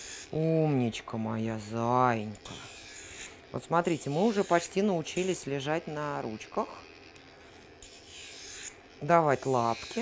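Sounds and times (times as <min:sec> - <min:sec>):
nail grinder grinding: 0:00.0 - 0:10.0.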